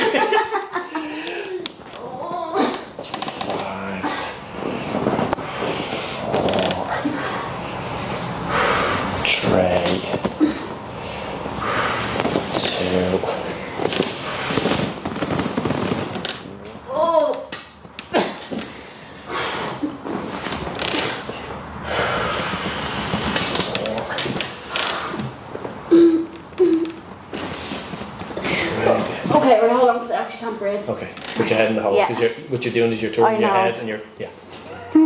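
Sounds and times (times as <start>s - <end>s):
rustling: 4.4s - 7.0s, 12.1s - 16.9s.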